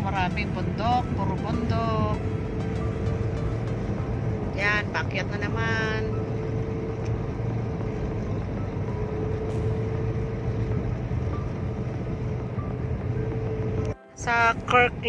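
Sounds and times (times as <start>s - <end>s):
car road and engine drone: 0.0s - 15.0s.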